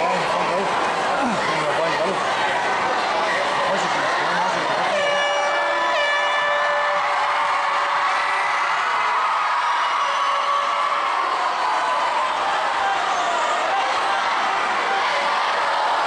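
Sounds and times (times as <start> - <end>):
spectators shouting and cheering: 0.0 - 16.0.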